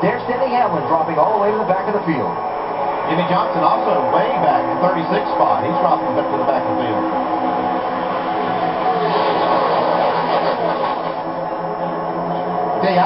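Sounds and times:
race car engines through tv speaker: 0.0s - 13.0s.

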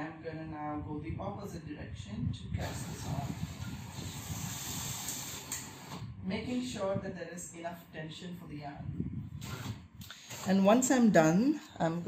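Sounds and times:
knitting machine carriage hissing: 2.7s - 6.0s.

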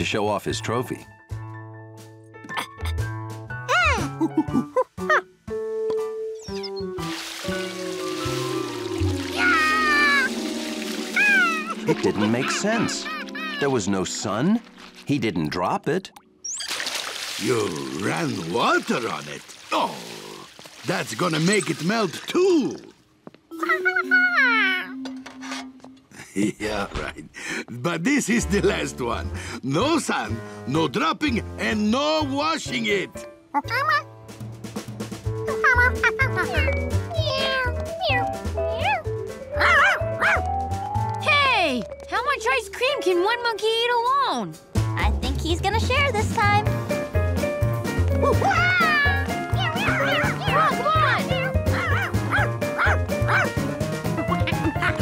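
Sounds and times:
background music: 0.0s - 16.5s, 23.5s - 26.6s, 27.4s - 55.0s
cartoon monkey crying: 3.7s - 5.3s, 9.3s - 10.3s, 11.1s - 13.9s, 23.5s - 25.0s, 48.2s - 53.5s.

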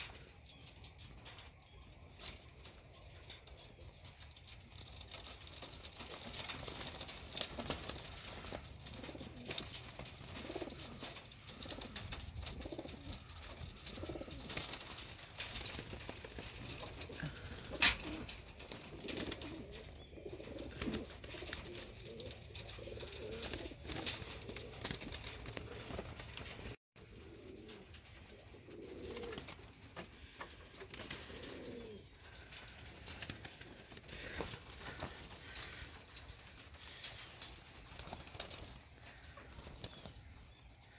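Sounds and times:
wing flaps: 4.4s - 40.4s
pigeons cooing: 4.9s - 40.9s.

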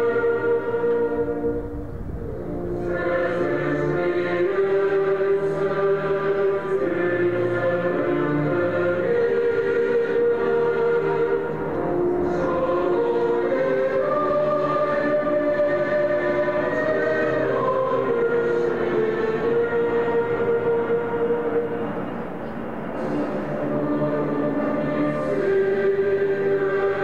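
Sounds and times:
choir singing slow anthem: 0.0s - 27.0s.

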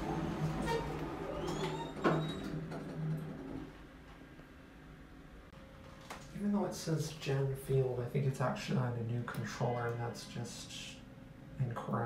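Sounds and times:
low elevator rumble: 0.0s - 4.0s
elevator hum: 0.0s - 5.5s.

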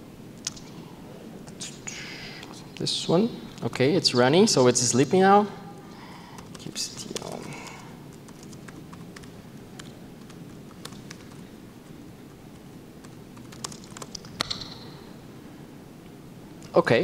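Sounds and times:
low room noise: 0.0s - 17.0s
laptop keyboard typing: 6.3s - 11.5s, 12.3s - 14.8s.

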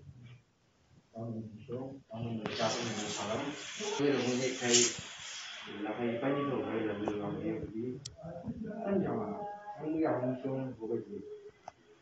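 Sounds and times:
man talking: 1.2s - 5.0s, 5.7s - 11.3s.

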